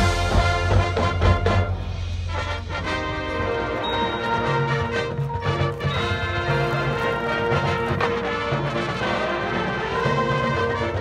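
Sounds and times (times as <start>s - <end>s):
brass chords: 0.0s - 11.0s
pulsing low drum line: 0.0s - 11.0s.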